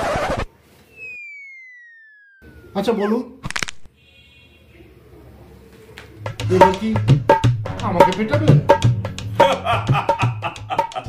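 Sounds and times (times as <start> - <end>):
downward sliding whistle tone: 0.8 - 3.0.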